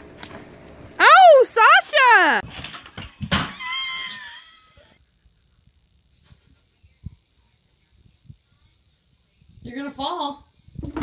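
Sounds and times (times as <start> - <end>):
child shrieking: 3.5 - 5.0.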